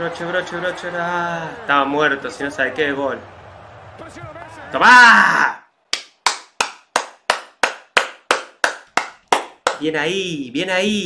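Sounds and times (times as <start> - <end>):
man clapping hands: 5.9 - 9.9.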